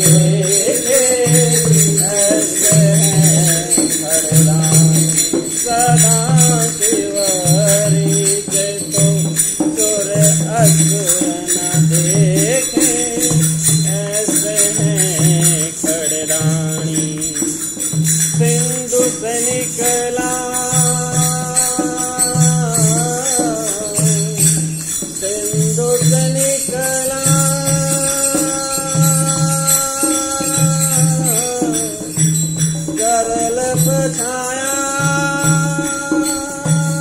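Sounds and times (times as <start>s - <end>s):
devotional song with wavering melody: 0.0s - 37.0s
jingling percussion: 0.0s - 37.0s.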